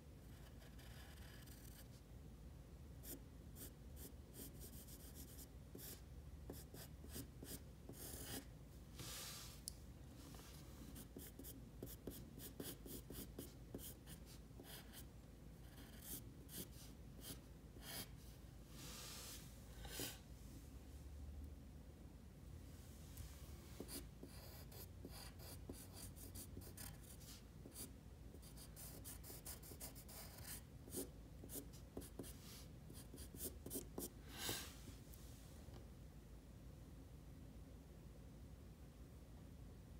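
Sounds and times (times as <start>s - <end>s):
pencil scratching on paper: 0.3s - 2.0s, 3.0s - 8.5s, 11.0s - 18.2s, 23.8s - 34.2s.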